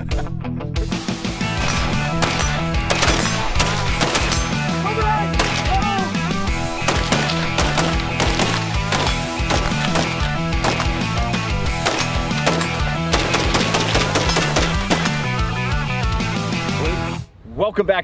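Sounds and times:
rifle gunfire: 0:02.1 - 0:04.6, 0:05.4 - 0:05.8, 0:06.8 - 0:11.1, 0:11.8 - 0:15.3.

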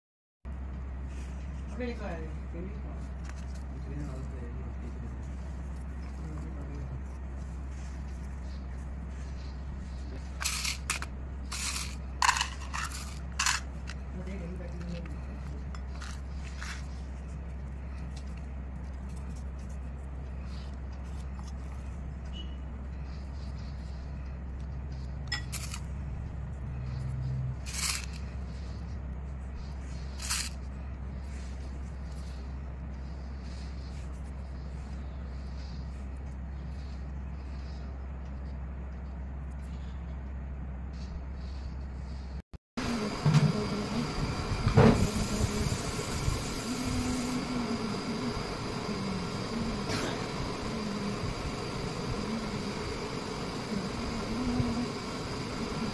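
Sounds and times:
steady low hum: 0:00.4 - 0:55.9.

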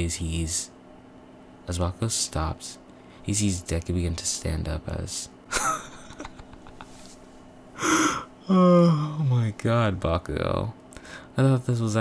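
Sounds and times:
person's sharp intake of breath: 0:07.8 - 0:08.4.

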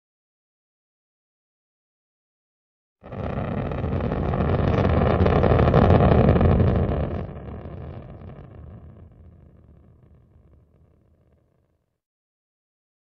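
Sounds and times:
rocket engine roar: 0:03.1 - 0:10.2.

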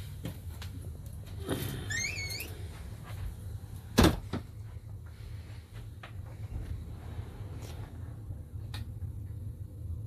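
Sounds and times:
low machinery hum: 0:00.0 - 0:10.0.

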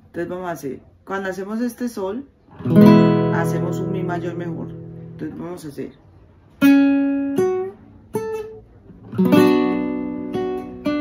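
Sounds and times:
classical guitar fingerpicked: 0:02.4 - 0:11.0.

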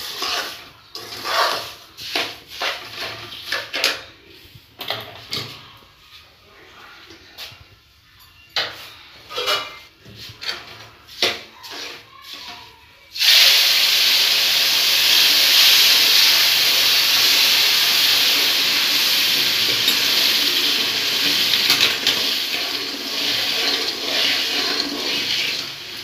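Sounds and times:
steel ladle scraping pan: 0:00.0 - 0:03.9, 0:09.2 - 0:12.5, 0:15.4 - 0:26.0
water hissing and bubbling in pan: 0:13.2 - 0:26.0
water pouring: 0:13.2 - 0:26.0.

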